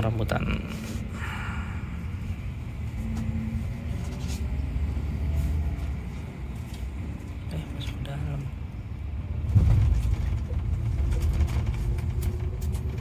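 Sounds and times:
coach engine rumble: 0.0 - 13.0.

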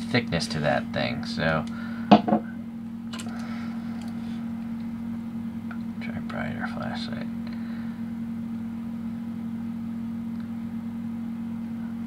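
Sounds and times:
steady low hum: 0.0 - 12.0
flashlight knock: 2.1 - 2.4.

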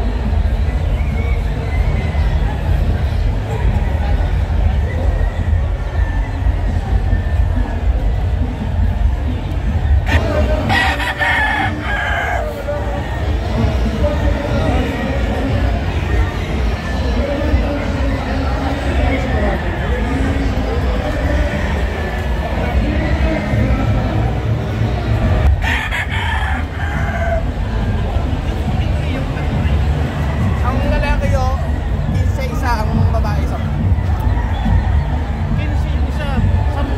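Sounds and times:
rooster crowing: 10.1 - 12.6, 25.6 - 27.5.

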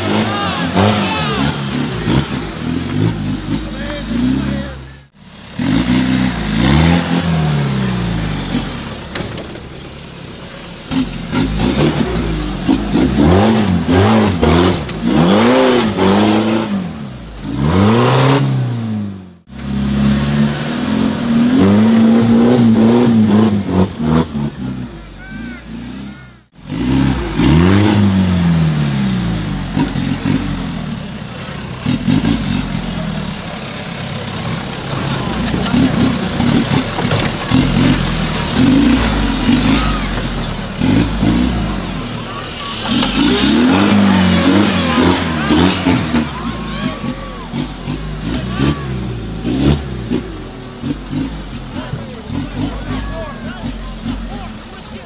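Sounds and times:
buggy engine revving hard: 0.0 - 9.4, 10.5 - 55.0.

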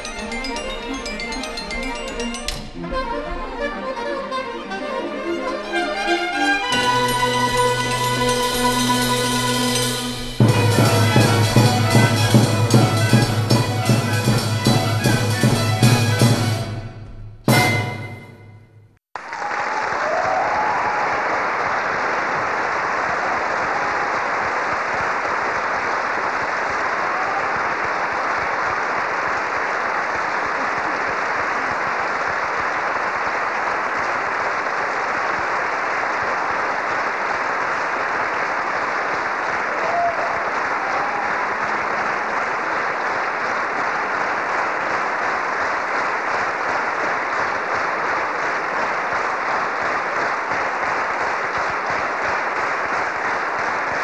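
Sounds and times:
ensemble music: 0.0 - 13.6
audience applause: 3.7 - 14.6, 19.2 - 54.0.

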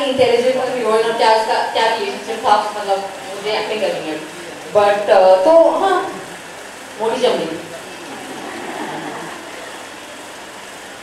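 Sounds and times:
crowded venue background noise: 0.0 - 11.0
faint voices: 0.0 - 11.0.

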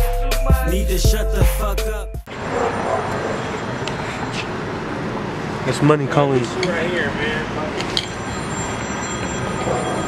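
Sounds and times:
street noise rushing: 2.3 - 10.0.

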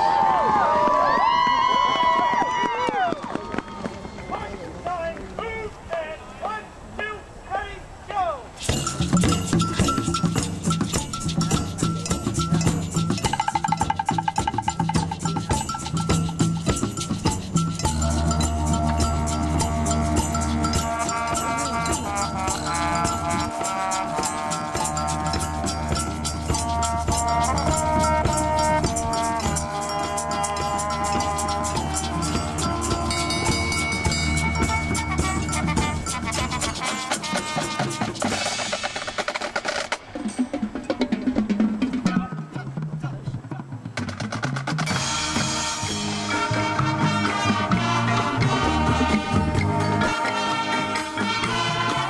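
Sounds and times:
mallet percussion: 8.6 - 39.4, 44.1 - 52.0
quick percussion strikes: 8.6 - 42.8, 44.0 - 52.0
marching band playing: 8.6 - 52.0
drumline drumming: 8.7 - 52.0
brass chords: 16.9 - 38.7, 44.9 - 52.0.

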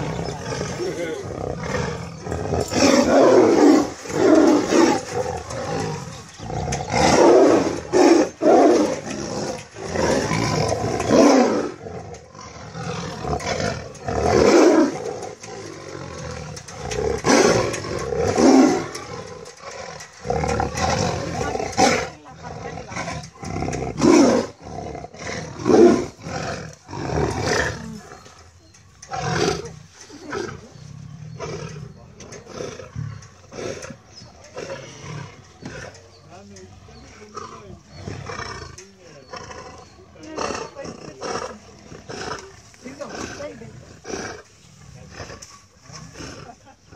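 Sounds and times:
tigers fighting and roaring: 0.0 - 46.9.

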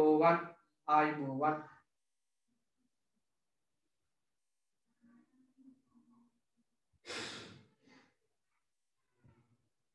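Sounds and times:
person breathing out: 7.0 - 8.2.

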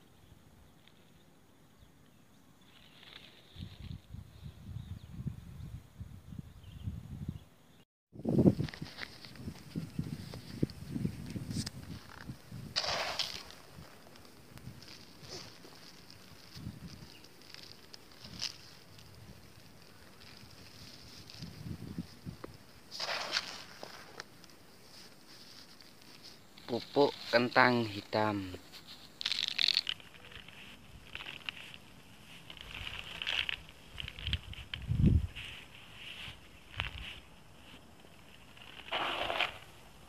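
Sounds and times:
footsteps on soil: 8.3 - 19.2, 20.1 - 29.2
hand rustling in granules: 12.8 - 21.6, 22.8 - 39.6.

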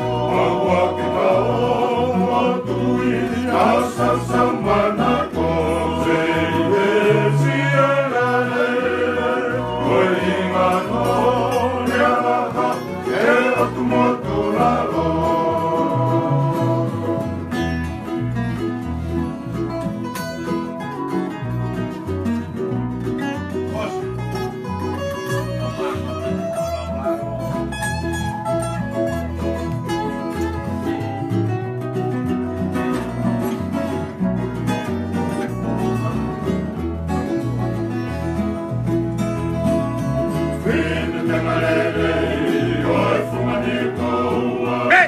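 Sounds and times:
men singing: 0.0 - 17.6, 40.3 - 45.0
acoustic guitar: 0.0 - 45.0
electric bass: 0.0 - 45.0
ukuleles: 0.0 - 45.0.

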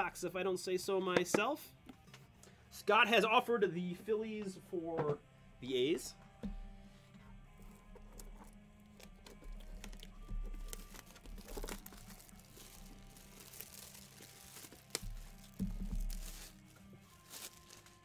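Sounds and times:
shrink wrap crinkling and tearing: 7.6 - 18.0.

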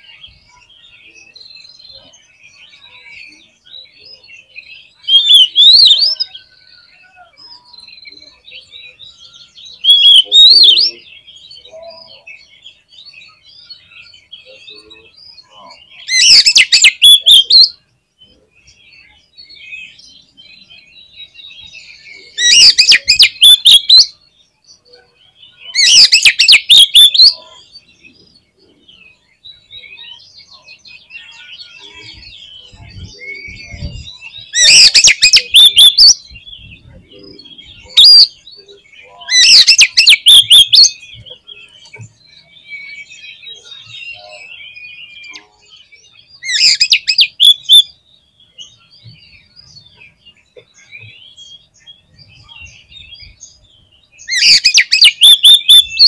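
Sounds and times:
bird singing rapid notes: 0.0 - 56.0
soft bird twittering: 0.0 - 56.0.

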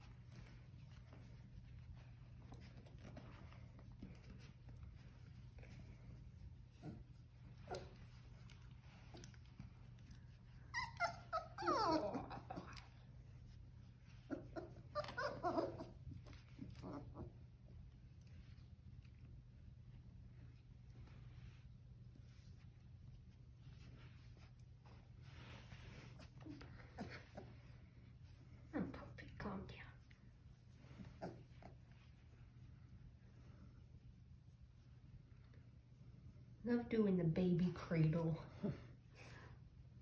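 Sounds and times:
puppy whimpering and yipping: 10.6 - 12.9, 14.2 - 16.0
woman whispering softly: 28.7 - 30.2.

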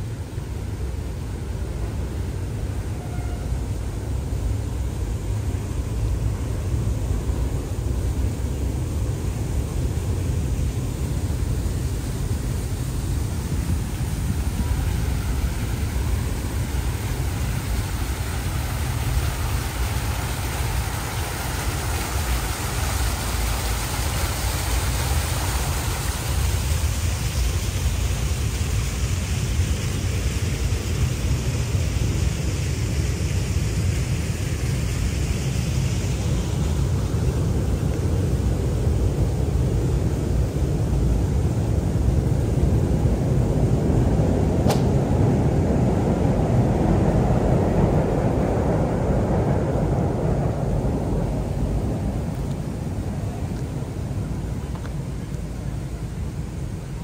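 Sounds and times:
continuous low rumble: 0.0 - 57.0
fountain water splashing: 0.0 - 57.0.

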